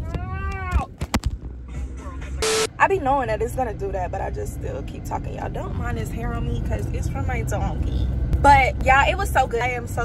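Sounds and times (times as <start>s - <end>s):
car interior rumble: 0.0s - 10.0s.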